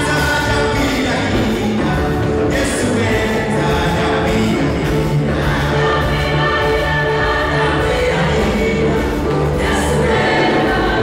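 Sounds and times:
choir singing gospel song: 0:00.0 - 0:11.0
instrumental backing: 0:00.0 - 0:11.0.

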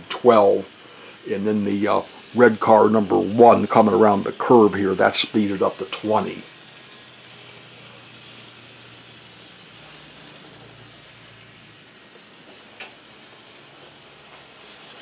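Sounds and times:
model trams whirring: 0:00.0 - 0:15.0
small click: 0:12.8 - 0:13.0.

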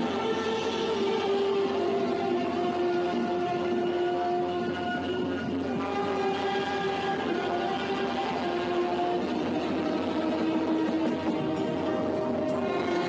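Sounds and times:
saxophones playing long notes: 0:00.0 - 0:13.0.

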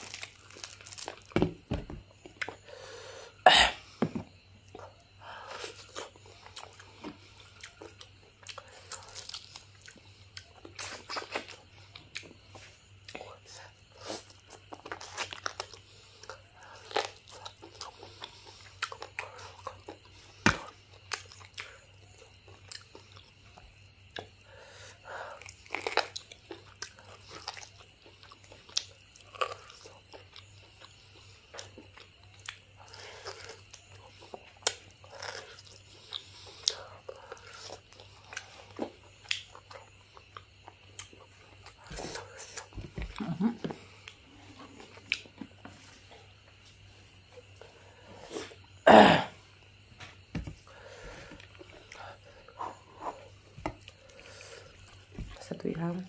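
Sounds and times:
biting and chewing meat: 0:25.4 - 0:43.3.

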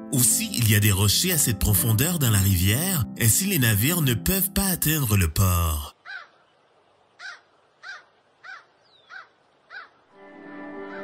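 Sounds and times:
bird short rising calls: 0:07.2 - 0:10.0.

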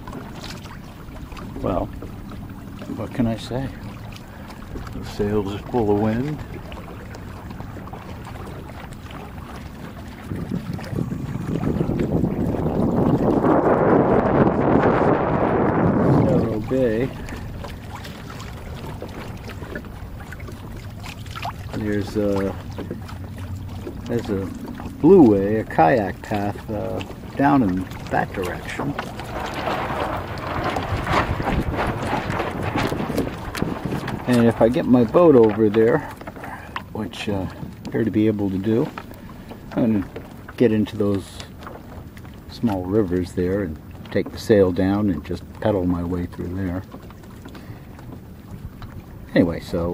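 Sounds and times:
wind on microphone: 0:00.0 - 0:40.2
water rushing past boat: 0:00.0 - 0:49.9.

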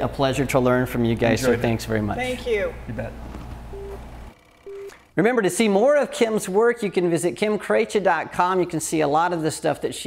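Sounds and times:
short electronic beeps: 0:03.7 - 0:04.0, 0:04.6 - 0:05.0.

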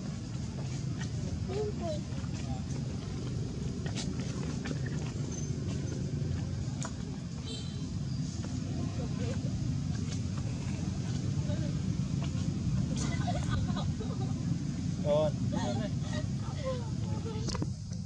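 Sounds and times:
low outdoor rumble: 0:00.0 - 0:18.0.

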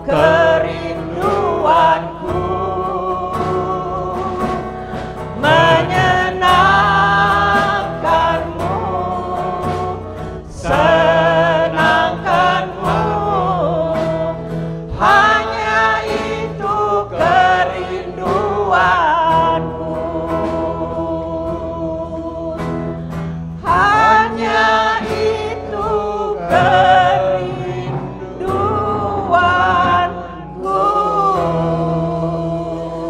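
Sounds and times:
congregation singing: 0:00.0 - 0:33.0.

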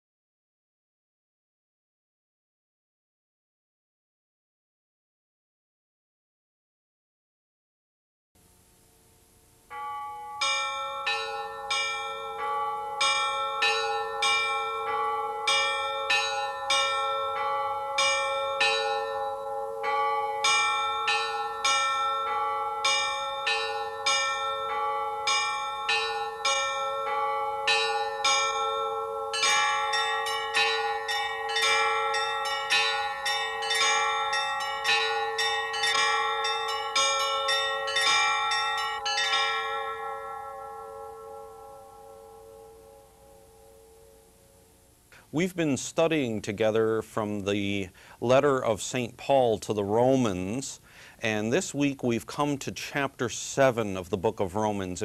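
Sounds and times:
church bells ringing: 0:09.7 - 0:44.7.

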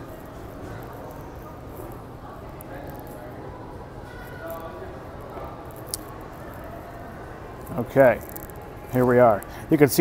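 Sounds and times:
airport terminal hum: 0:00.0 - 0:10.0.

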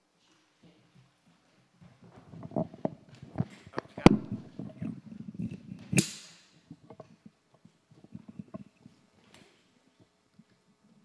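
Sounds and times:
microphone handling rustle: 0:02.0 - 0:06.0.

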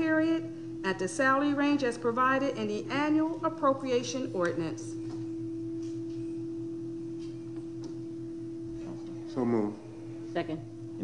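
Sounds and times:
faint low buzz: 0:00.0 - 0:11.0
steady pure tone: 0:00.0 - 0:11.0.

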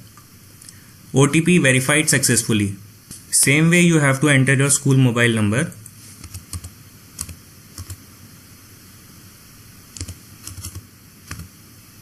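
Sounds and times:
computer keyboard typing: 0:06.2 - 0:08.0, 0:10.0 - 0:11.5.

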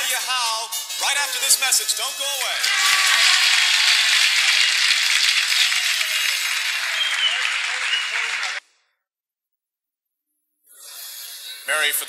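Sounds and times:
audience applauding: 0:02.6 - 0:08.6.

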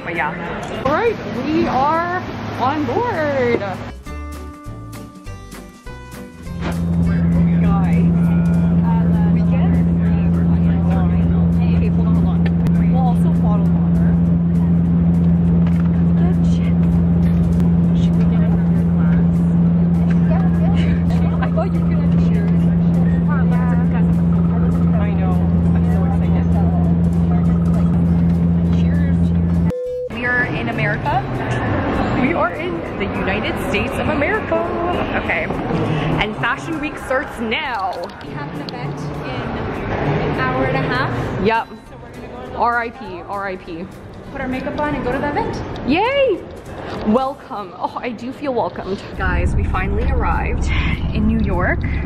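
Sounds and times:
people talking: 0:00.0 - 0:03.9, 0:07.0 - 0:17.0, 0:17.6 - 0:29.5, 0:30.1 - 0:46.4, 0:47.0 - 0:52.0
airliner engines droning: 0:06.8 - 0:40.0, 0:48.8 - 0:52.0.

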